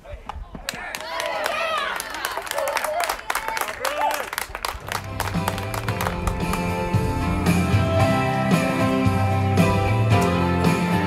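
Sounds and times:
people clapping: 0.4s - 7.0s
music with guitar: 5.0s - 11.0s.

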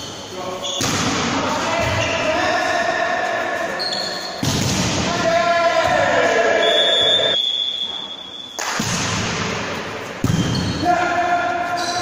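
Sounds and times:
referee's whistle blast: 6.6s - 8.6s.

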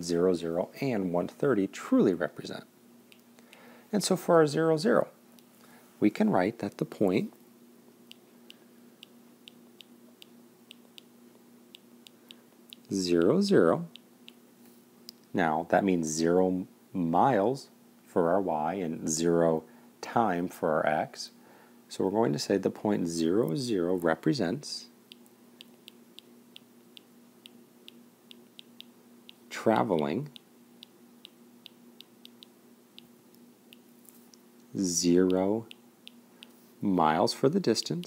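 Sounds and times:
faint electrical hum: 0.0s - 38.0s
stylus ticking on tablet screen: 9.0s - 11.1s, 25.1s - 33.1s, 35.1s - 36.5s.

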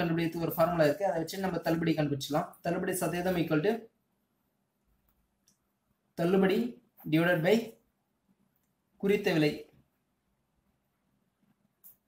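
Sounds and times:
person speaking: 0.0s - 4.0s, 6.2s - 7.9s, 9.0s - 9.8s.

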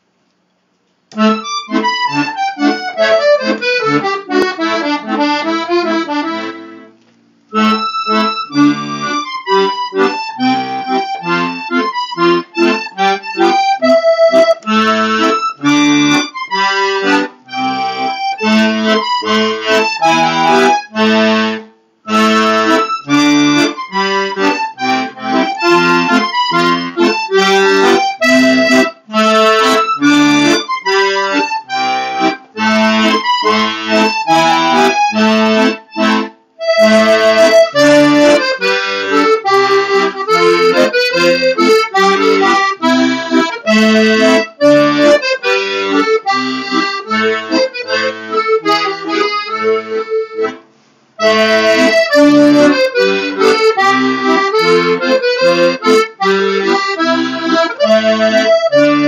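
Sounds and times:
button accordion playing melody: 1.1s - 59.0s.

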